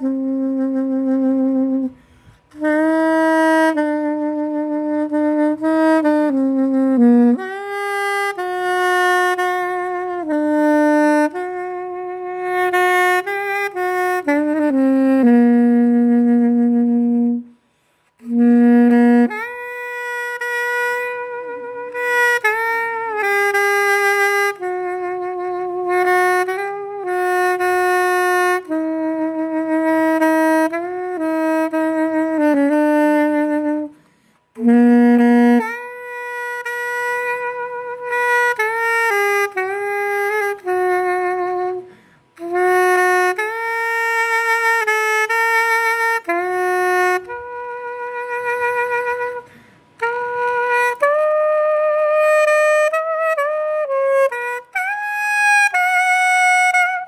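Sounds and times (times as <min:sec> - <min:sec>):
soprano saxophone melody: 0:00.0 - 0:57.0.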